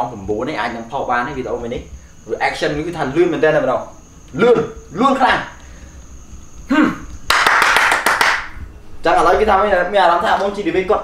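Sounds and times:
man clapping hands quickly: 0:07.2 - 0:08.6.

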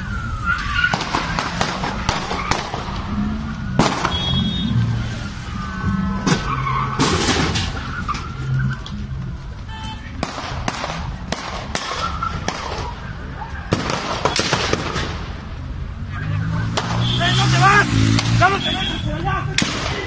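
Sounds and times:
sharp gunshots: 0:00.9 - 0:03.0, 0:03.8 - 0:04.5, 0:10.2 - 0:12.9, 0:13.7 - 0:15.3, 0:16.7 - 0:20.0.

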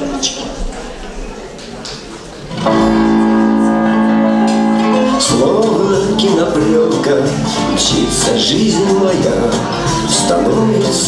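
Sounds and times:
instrumental pop backing track: 0:02.5 - 0:11.0.

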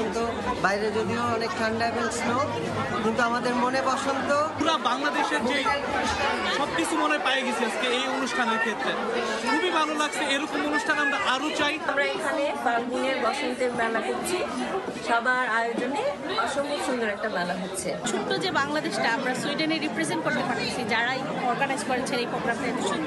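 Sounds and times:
people chattering: 0:00.0 - 0:23.0.

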